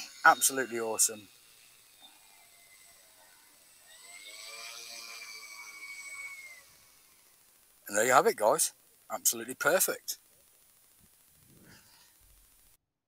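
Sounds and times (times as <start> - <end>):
model plane electric motors whining: 0.0 - 12.8.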